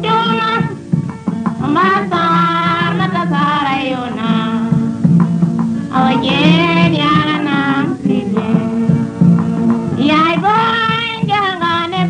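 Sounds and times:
instrumental backing: 0.0s - 12.0s
high voice singing held notes: 5.8s - 11.2s.

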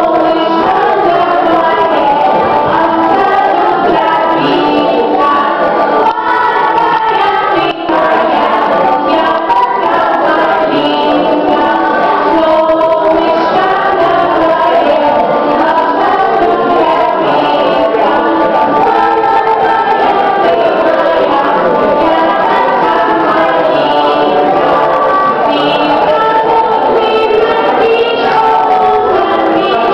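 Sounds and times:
children singing together: 0.0s - 29.9s.

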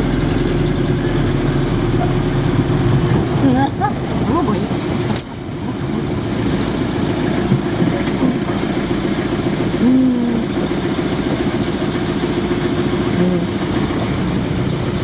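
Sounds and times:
van engine droning: 0.0s - 15.0s.

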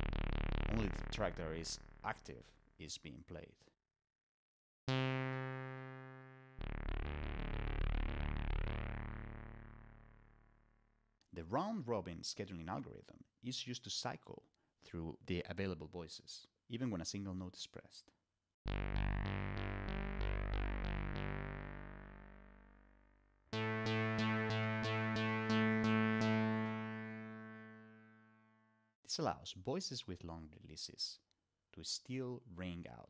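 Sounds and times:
synth tones: 4.9s - 10.4s, 23.5s - 28.8s
synth chord ringing out: 4.9s - 10.5s, 18.7s - 28.9s.

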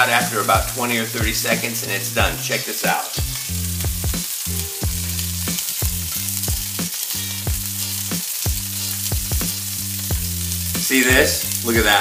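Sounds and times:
background music with beat: 0.0s - 12.0s
fish sizzling in oil: 0.0s - 12.0s.

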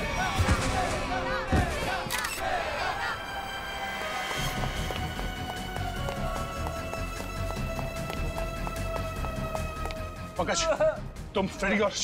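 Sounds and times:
fast-paced background music: 0.0s - 12.0s.

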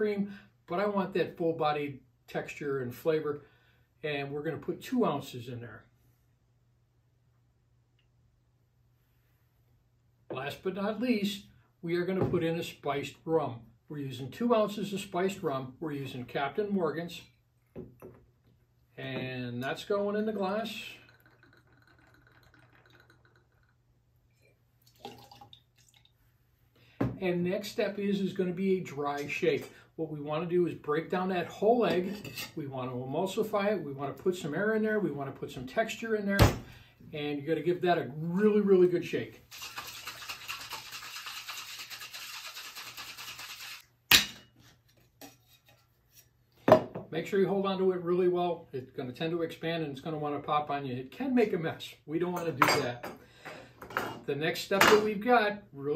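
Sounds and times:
liquid pouring into metal jigger: 20.8s - 23.8s, 24.8s - 26.1s, 39.5s - 43.8s.

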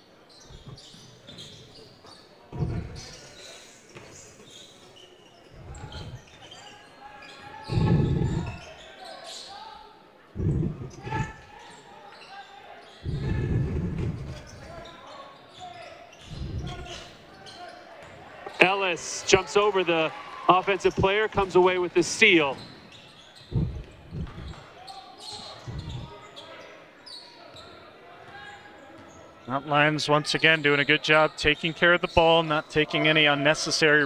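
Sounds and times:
scattered voices: 0.4s - 1.0s, 2.5s - 3.8s, 5.5s - 22.7s, 23.5s - 26.4s.

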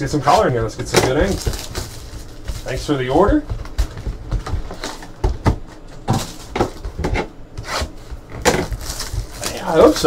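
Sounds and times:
cardboard box and plastic wrapping torn: 8.5s - 10.0s.

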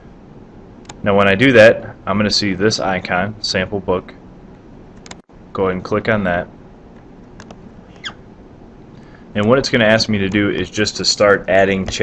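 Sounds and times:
microphone hum and hiss: 0.0s - 12.0s.

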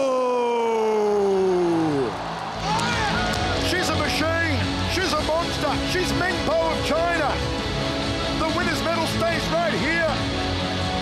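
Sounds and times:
background music: 0.2s - 11.0s.

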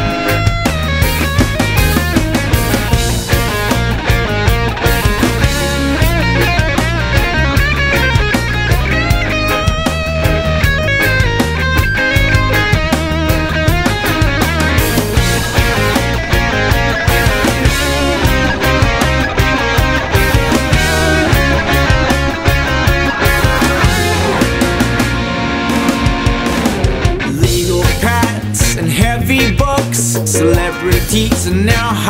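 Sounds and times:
reggae-rock instrumental with guitar: 0.0s - 32.0s.

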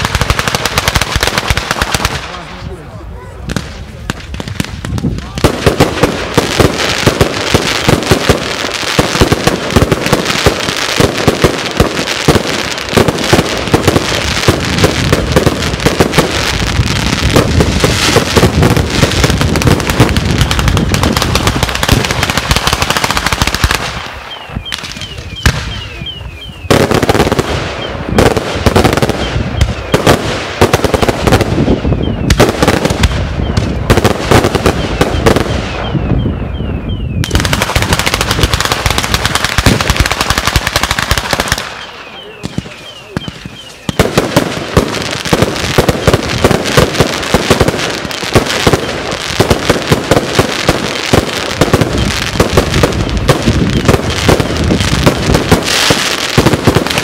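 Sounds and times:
firecrackers crackling rapidly: 0.0s - 36.3s, 37.1s - 57.0s.

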